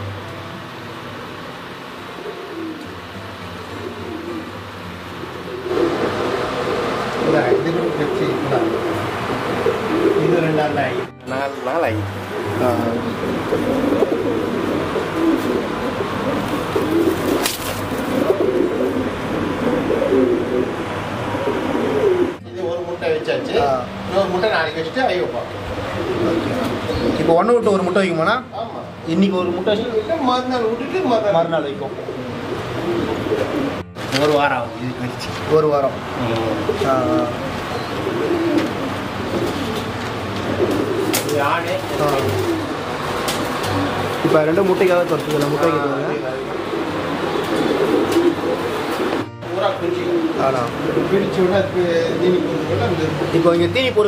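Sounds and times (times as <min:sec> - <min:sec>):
pigeons cooing: 0:01.1 - 0:11.2, 0:11.8 - 0:22.4, 0:24.1 - 0:28.0, 0:29.4 - 0:54.0.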